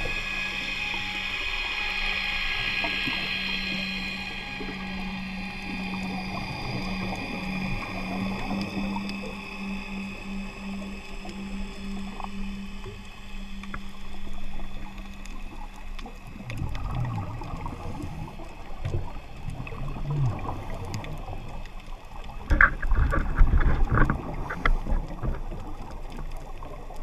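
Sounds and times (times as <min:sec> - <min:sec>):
scuba exhaled bubbles rumbling: 0:00.0 - 0:27.0
steady low underwater hum: 0:00.0 - 0:27.0.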